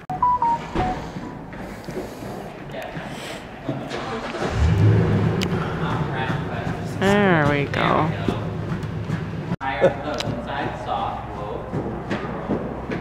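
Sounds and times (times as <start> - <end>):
vehicle engine starting and humming: 3.8 - 9.6.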